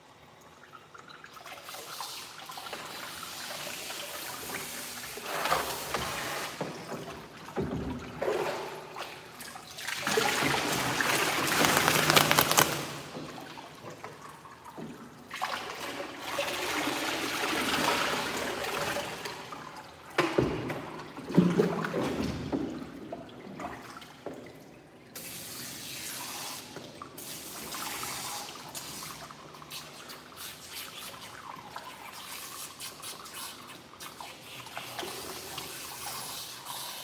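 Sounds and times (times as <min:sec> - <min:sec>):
water splashing and running: 0:01.3 - 0:24.0
hands rubbing wet fur: 0:11.0 - 0:13.1.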